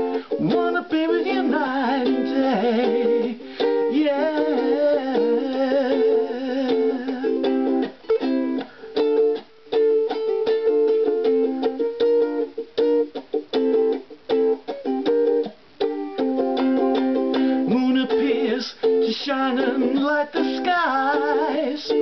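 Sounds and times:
ukulele strumming reggae rhythm: 0.0s - 22.0s.

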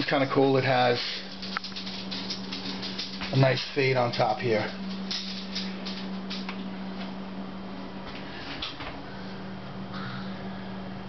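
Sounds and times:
steady low hum: 0.0s - 11.0s
faint handling rustles: 0.8s - 9.0s.

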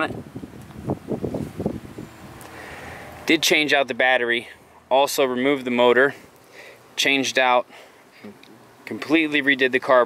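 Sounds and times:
wind buffeting microphone: 0.0s - 3.2s
faint steady hiss: 0.0s - 10.0s.

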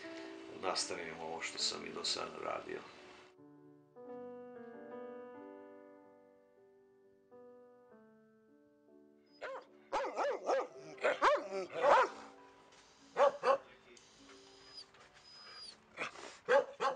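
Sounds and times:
soft piano music: 0.0s - 16.9s
dogs barking: 9.4s - 12.4s, 13.2s - 13.6s, 16.0s - 16.9s.

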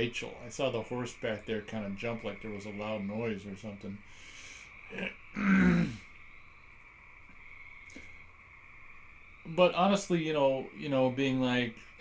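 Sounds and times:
faint steady high tone: 0.0s - 12.0s
man grunting: 5.0s - 6.0s.

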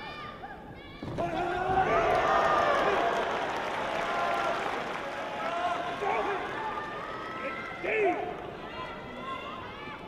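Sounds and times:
shouted voices echoing: 5.4s - 10.0s.

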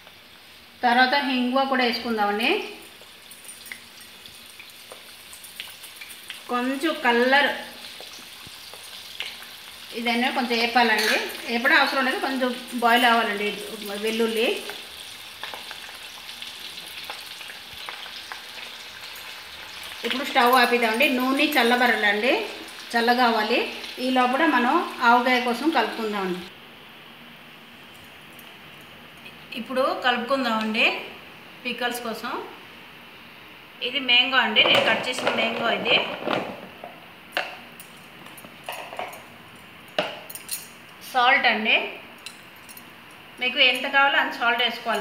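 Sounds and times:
hot oil sizzling: 0.0s - 26.5s.

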